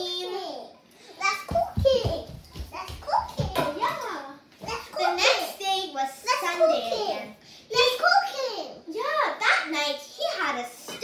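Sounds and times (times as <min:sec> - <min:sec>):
footsteps on wooden floor: 0:01.4 - 0:04.0.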